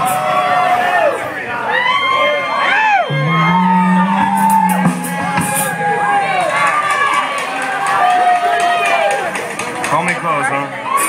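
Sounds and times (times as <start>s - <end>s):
audience shouting and whooping: 0.0s - 9.3s.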